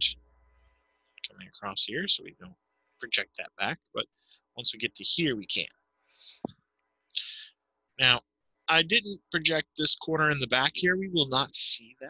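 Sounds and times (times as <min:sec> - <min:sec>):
man breathing: 0:04.2 - 0:04.5, 0:06.0 - 0:06.6, 0:07.2 - 0:07.5.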